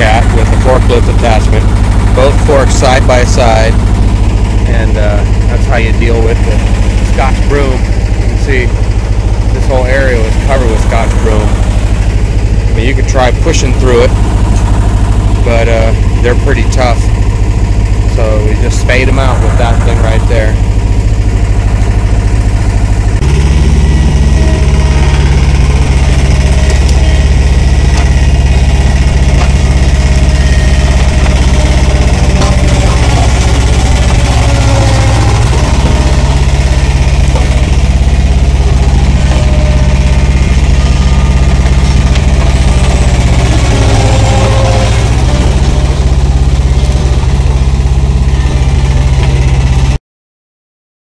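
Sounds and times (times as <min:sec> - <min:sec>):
loader engine under load: 0:00.0 - 0:50.0.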